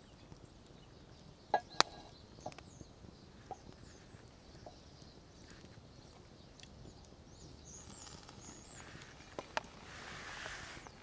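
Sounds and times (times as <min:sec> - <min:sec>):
faint bird chirps: 0:00.0 - 0:11.0.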